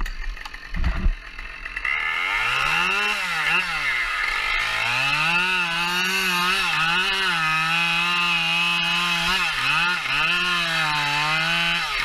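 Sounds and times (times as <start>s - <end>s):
chainsaw idling and revving: 0.0s - 12.0s.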